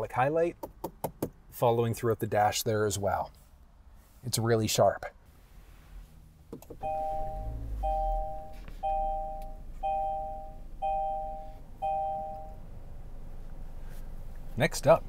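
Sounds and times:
car warning chime two tones: 6.8s - 12.6s.

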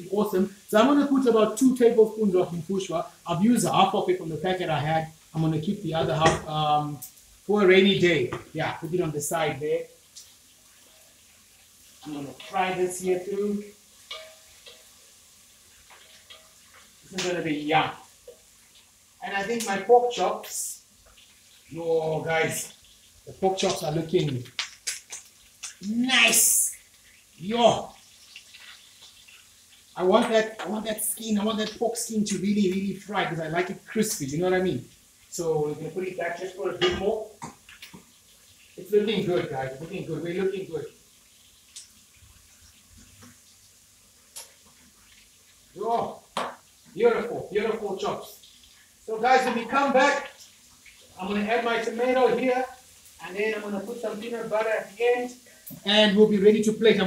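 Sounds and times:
food sizzling in pans: 0.0s - 57.0s.

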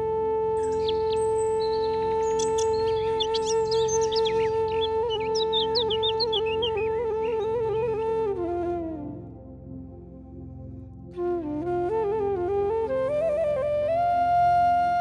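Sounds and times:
flute music: 0.0s - 15.0s
birdsong chirping: 0.6s - 8.0s.

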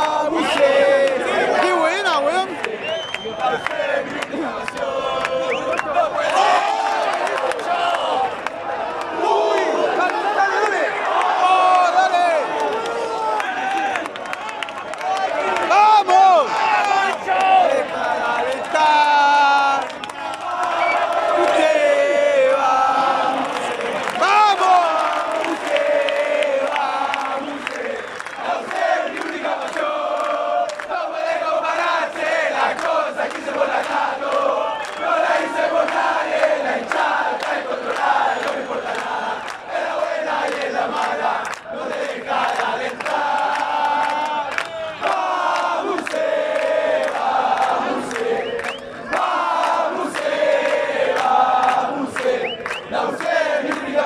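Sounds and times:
crowd singing a chant: 0.0s - 14.0s, 15.3s - 54.0s.

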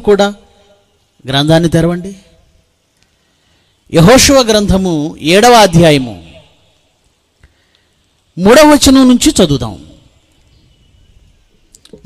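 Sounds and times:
man speaking: 1.2s - 2.4s, 3.9s - 6.6s, 8.4s - 10.0s.

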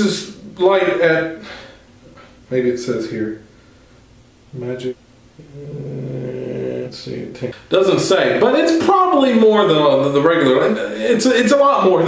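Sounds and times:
man humming a low tone: 5.4s - 7.3s.

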